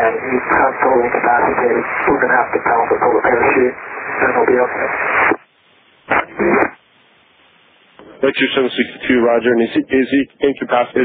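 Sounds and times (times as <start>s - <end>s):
radio channel hiss: 0.0s - 11.0s
garbled radio burst: 6.1s - 6.8s.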